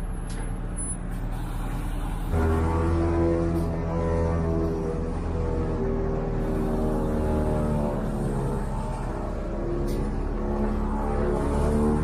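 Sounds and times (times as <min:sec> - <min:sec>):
slow low held music notes: 0:02.2 - 0:12.0.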